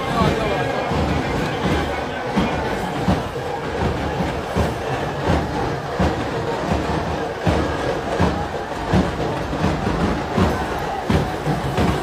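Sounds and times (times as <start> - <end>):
procession crowd noise: 0.0 - 12.0.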